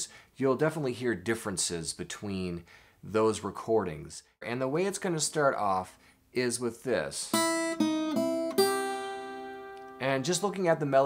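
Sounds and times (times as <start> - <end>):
acoustic guitar fingerpicked: 7.3 - 11.0.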